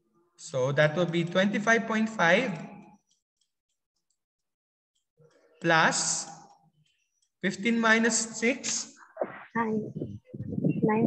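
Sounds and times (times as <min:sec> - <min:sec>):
man speaking: 0:00.4 - 0:02.9, 0:05.6 - 0:06.6, 0:07.4 - 0:09.0.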